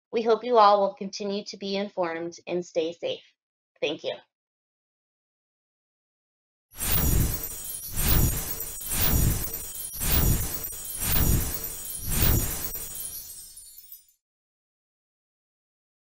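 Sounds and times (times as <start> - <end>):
glassy shimmering sparkle: 6.8 - 14.2.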